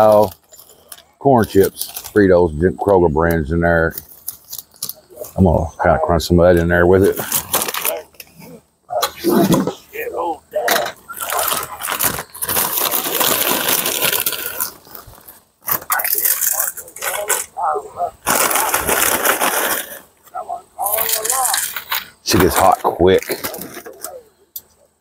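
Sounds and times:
plastic snack bag crinkling: 0.0 - 2.4, 7.0 - 8.3, 11.1 - 17.5, 18.2 - 20.1, 20.8 - 24.2
corn chips being crushed: 11.1 - 17.5, 18.2 - 20.0, 20.8 - 24.1.

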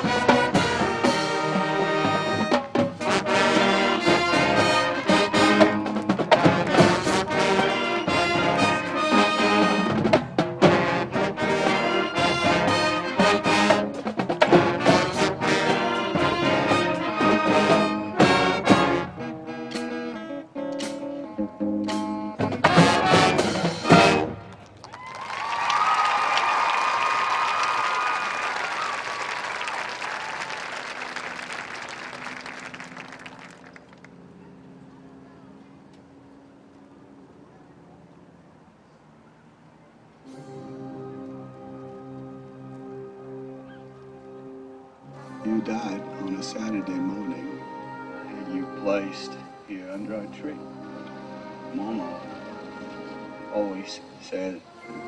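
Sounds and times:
marching band playing: 0.0 - 36.5, 40.2 - 55.0
crowd applause and cheering: 23.8 - 34.4.

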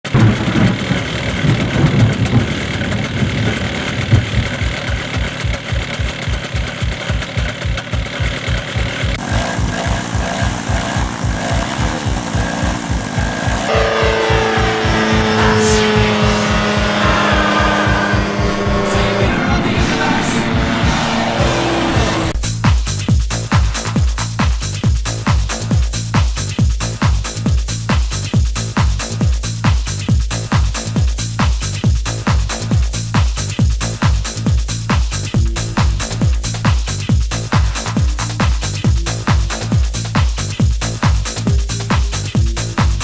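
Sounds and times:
engine noise: 0.0 - 24.4, 33.8 - 43.0
fast electronic dance music: 3.9 - 43.0.

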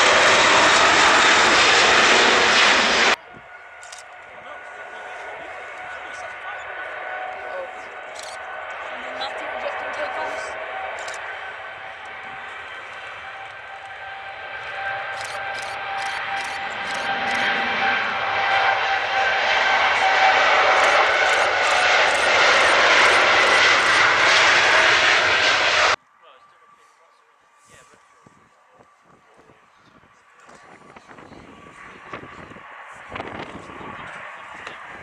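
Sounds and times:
jet engines roaring on takeoff: 0.0 - 35.0.

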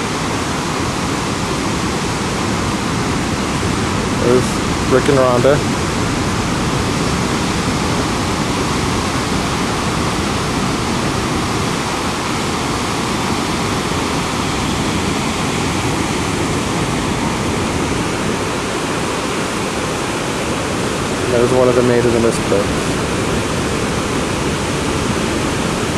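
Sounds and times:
rush of falling water: 0.0 - 25.9.

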